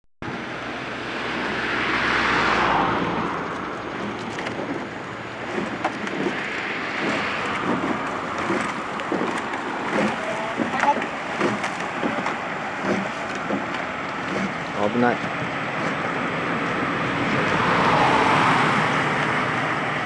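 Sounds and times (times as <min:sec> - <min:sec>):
wind buffeting microphone: 0:00.2 - 0:20.0
water splashes: 0:00.3 - 0:20.0.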